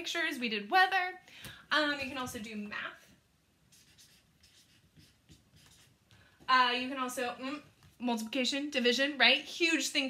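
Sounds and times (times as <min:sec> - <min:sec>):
marker scratching on paper: 0:03.7 - 0:06.0.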